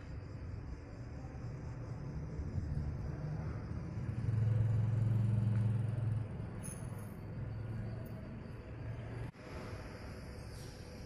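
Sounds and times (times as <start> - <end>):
street background noise: 0.0 - 11.0
passing vehicle engine rumble: 2.0 - 9.3.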